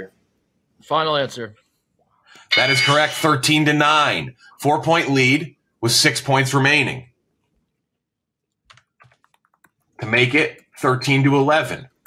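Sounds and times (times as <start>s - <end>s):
faint keyboard typing: 7.4s - 11.3s.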